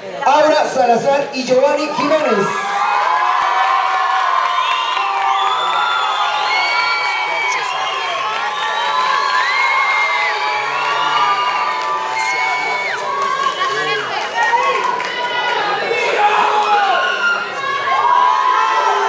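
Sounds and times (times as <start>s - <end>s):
audience cheering and shouting: 1.5s - 19.0s.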